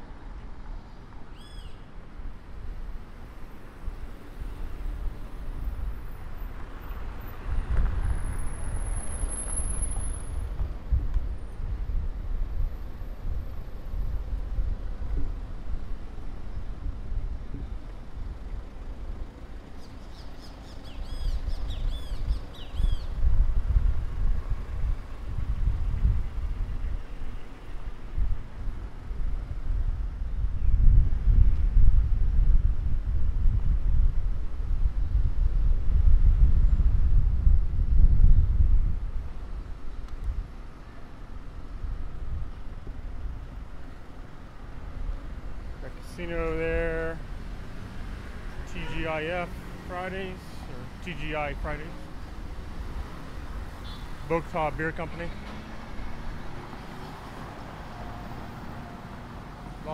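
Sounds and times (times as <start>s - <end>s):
city traffic rumbling: 0.0s - 59.9s
bird chirping: 19.8s - 23.1s.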